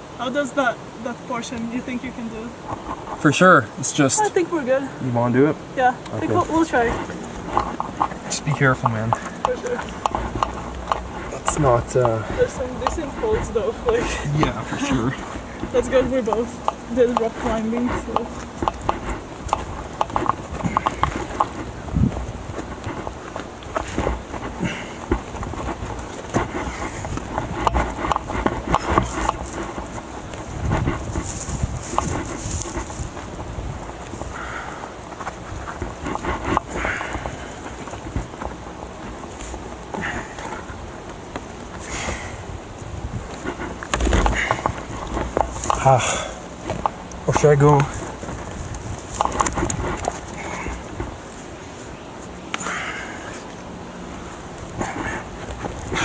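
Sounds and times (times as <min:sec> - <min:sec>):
steady low rumble: 0:00.0 - 0:56.0
hands and shoes on rock: 0:01.5 - 0:56.0.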